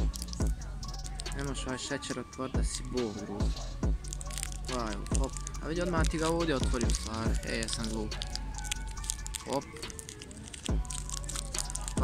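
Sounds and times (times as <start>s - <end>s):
paper wrapper crinkling: 0.0s - 1.6s, 4.0s - 12.0s
background music: 0.0s - 12.0s.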